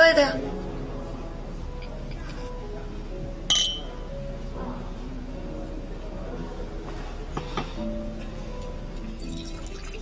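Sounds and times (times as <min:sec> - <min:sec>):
wine glasses clinking: 0:03.5 - 0:04.0, 0:09.1 - 0:10.0.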